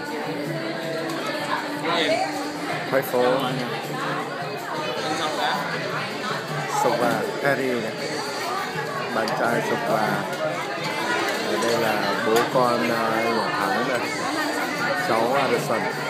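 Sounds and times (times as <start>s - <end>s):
diners chattering: 0.0s - 16.0s.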